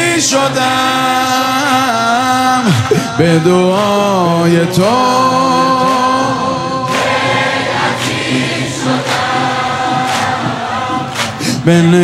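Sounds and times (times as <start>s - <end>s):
crowd of men singing: 0.0s - 12.0s
sharp rhythmic beat: 2.6s - 12.0s.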